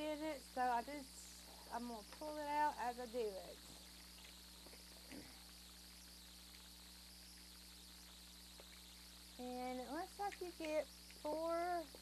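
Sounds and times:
low electrical hum and hiss: 0.0 - 12.0.

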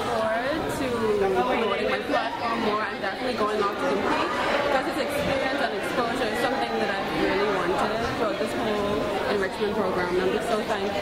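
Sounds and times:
crowd chatter: 0.0 - 11.0
young woman talking: 0.0 - 11.0.

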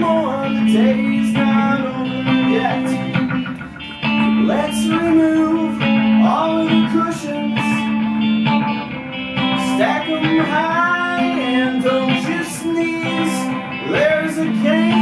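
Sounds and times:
electric guitar strumming chords: 0.0 - 15.0.

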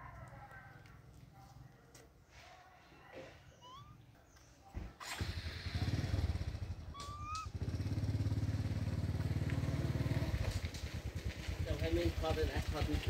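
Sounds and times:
motorcycle engine running: 5.0 - 13.0.

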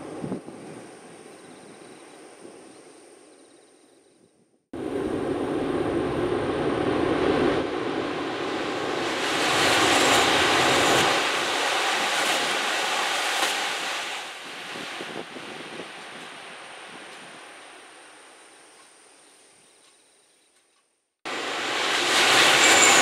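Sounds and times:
high-speed train passing: 4.8 - 18.2, 21.3 - 23.0.

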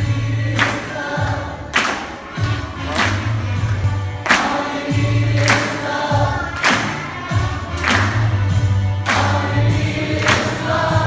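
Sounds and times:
bass line: 0.0 - 11.0
congregation singing: 0.0 - 11.0.

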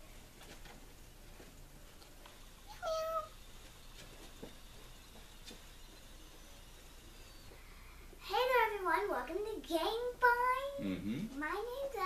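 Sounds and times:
cat meowing: 2.7 - 3.4.

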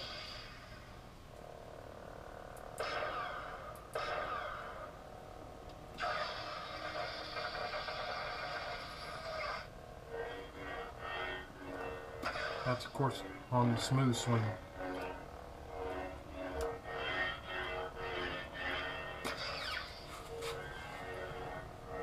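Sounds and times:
lightsaber hum: 0.0 - 22.0
lightsaber igniting: 2.7 - 4.9, 5.9 - 9.7, 10.6 - 13.3, 16.6 - 21.4.

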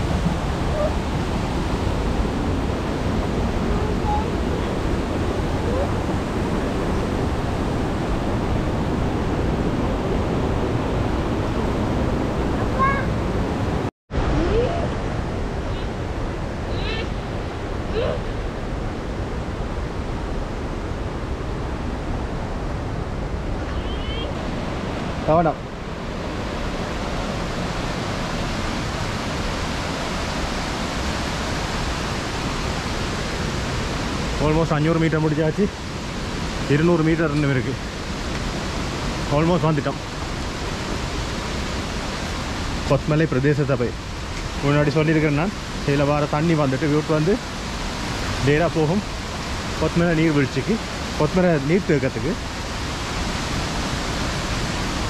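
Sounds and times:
fast-flowing water rushing: 0.0 - 55.0.

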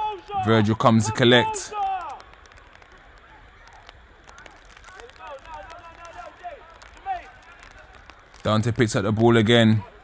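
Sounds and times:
distant shouts of footballers: 0.0 - 8.1.

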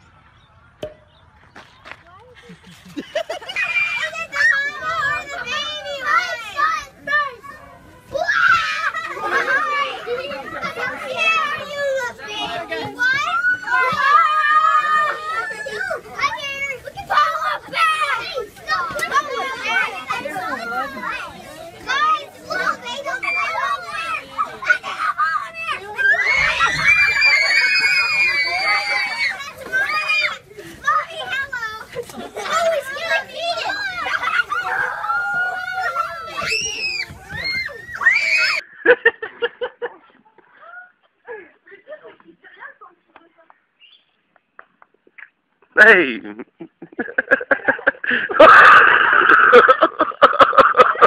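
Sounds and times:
children shouting and squealing: 0.0 - 42.8, 47.0 - 51.0.

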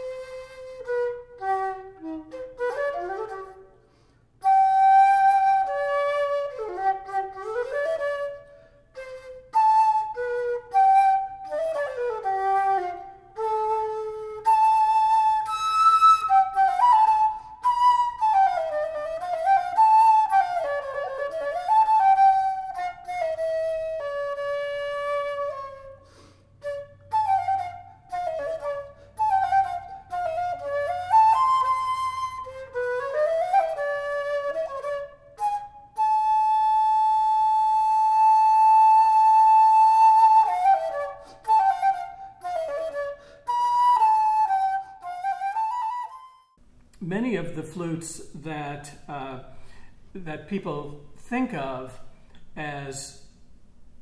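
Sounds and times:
solo transverse flute: 0.0 - 46.6.

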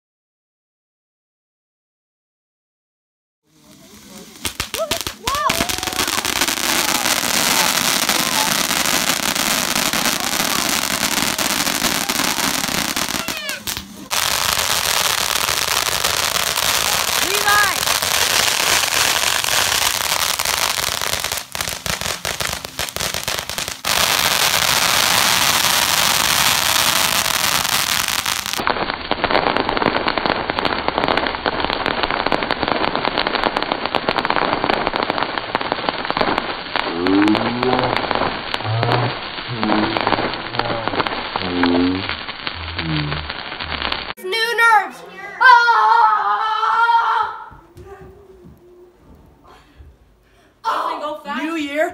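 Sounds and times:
voices: 3.5 - 14.2, 17.1 - 17.9, 36.9 - 43.2, 43.8 - 49.8, 50.6 - 51.9
fireworks hissing and crackling: 3.5 - 45.2.

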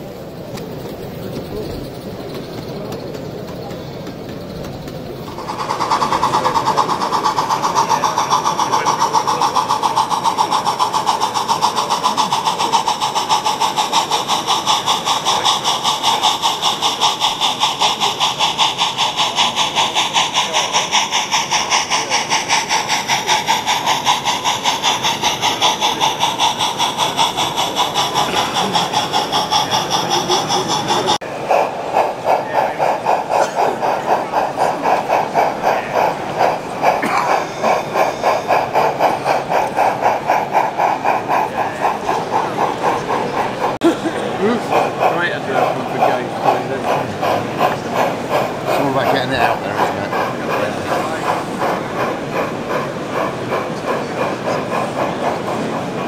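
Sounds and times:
model steam locomotive exhaust beats: 0.0 - 56.0
steam hissing: 0.0 - 56.0.

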